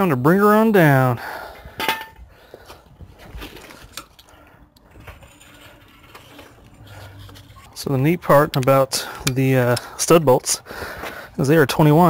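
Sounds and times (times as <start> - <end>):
suspension clicks and creaks: 3.3 - 11.1.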